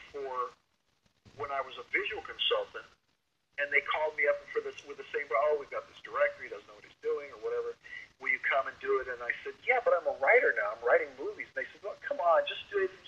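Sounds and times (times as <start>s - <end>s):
man talking: 0.0s - 0.6s, 1.4s - 2.9s, 3.6s - 13.0s.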